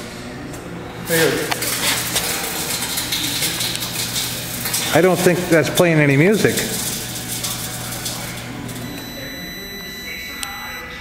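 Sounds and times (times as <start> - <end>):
microwave oven hum: 0.0 - 11.0
crackling of electrical arcing: 0.5 - 10.8.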